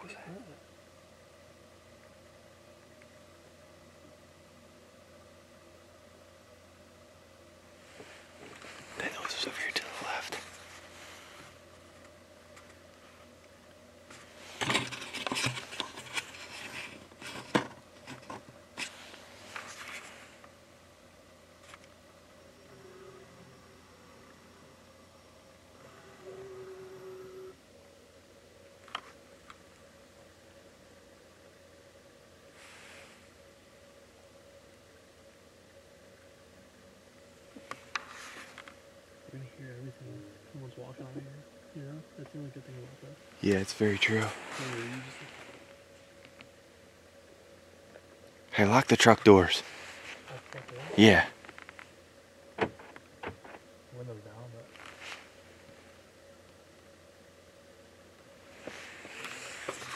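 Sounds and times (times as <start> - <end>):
faint steady hum: 0.0 - 59.9
people whispering: 9.0 - 10.5, 39.3 - 45.6.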